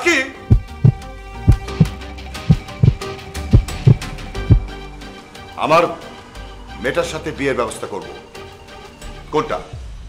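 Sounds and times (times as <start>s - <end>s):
heartbeat thumps: 0.5s - 4.8s
held music drone: 0.5s - 6.9s.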